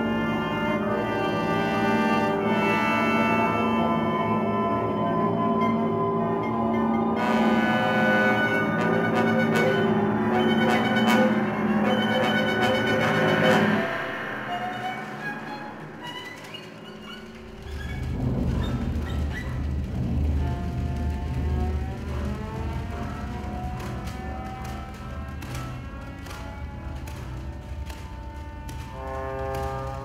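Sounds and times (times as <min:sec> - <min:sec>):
chamber ensemble playing: 0:00.0 - 0:18.4
deep low rumble: 0:17.4 - 0:29.0.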